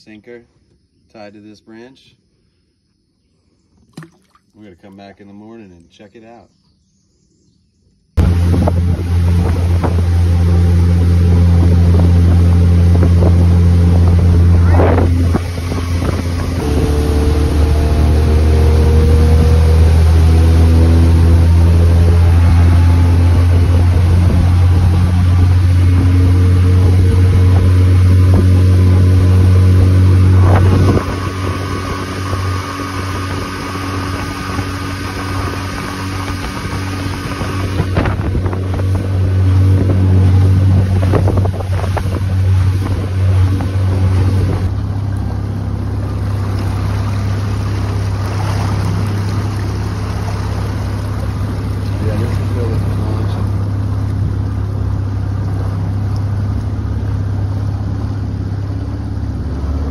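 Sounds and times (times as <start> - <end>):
wind: 0.0 - 59.9
outboard motor running: 3.8 - 5.5, 8.2 - 59.9
water noise: 3.8 - 5.9, 8.2 - 59.9.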